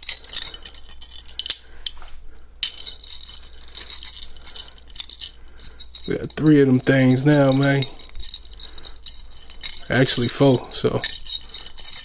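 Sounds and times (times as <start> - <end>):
metal chains jingling: 0.0 - 2.0, 2.6 - 12.0.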